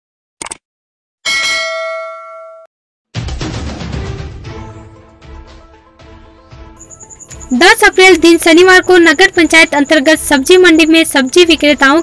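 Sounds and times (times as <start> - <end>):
bell ding: 1.3 - 2.7.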